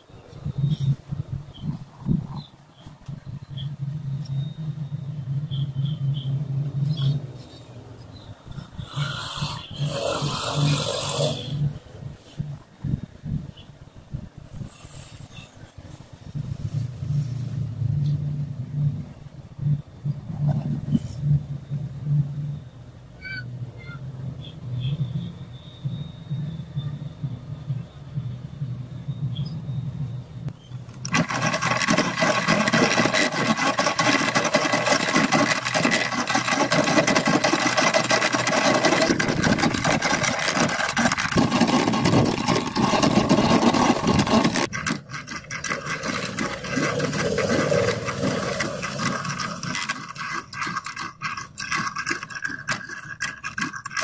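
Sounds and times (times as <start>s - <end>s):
coil winding machine cranked fast: 8.8s - 11.6s, 30.9s - 54.0s.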